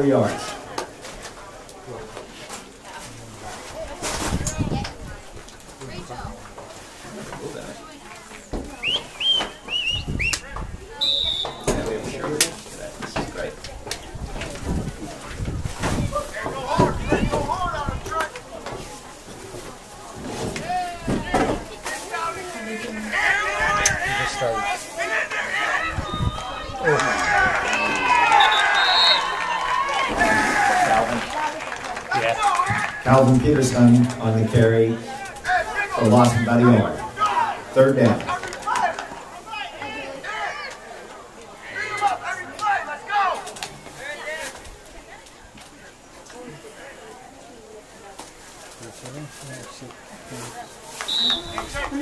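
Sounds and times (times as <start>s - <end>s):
spectators talking and calling out: 0.0s - 52.0s
short high whistle-like tone: 51.1s - 51.8s.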